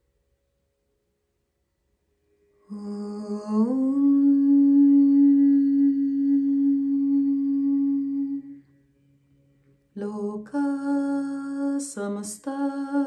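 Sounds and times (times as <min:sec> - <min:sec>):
woman chanting a sustained note: 0:02.5 - 0:13.0.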